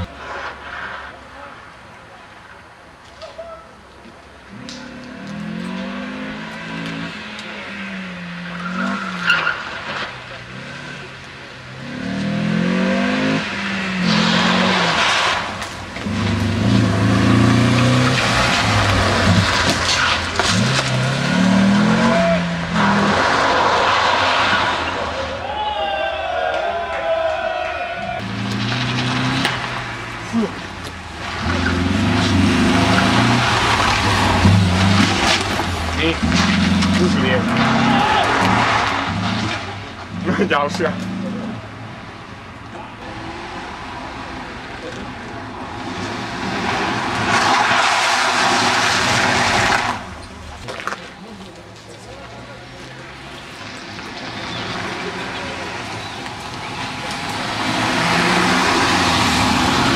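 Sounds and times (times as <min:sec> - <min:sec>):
tyres skidding on gravel: 0:00.0 - 0:59.9
rally car engine revving: 0:04.5 - 0:25.4, 0:28.0 - 0:59.9.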